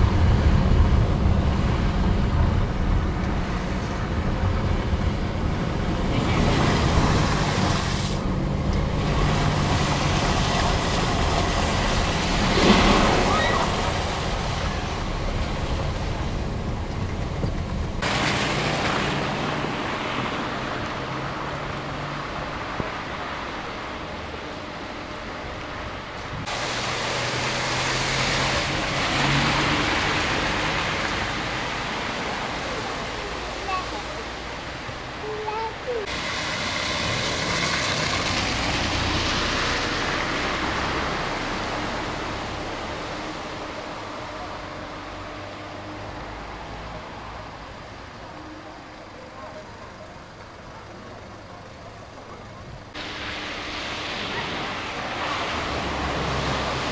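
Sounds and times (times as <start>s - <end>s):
low engine hum: 0.0s - 56.9s
water spray from car tyres: 6.2s - 16.3s, 18.0s - 23.9s, 26.2s - 34.5s, 35.5s - 44.1s, 52.9s - 56.9s.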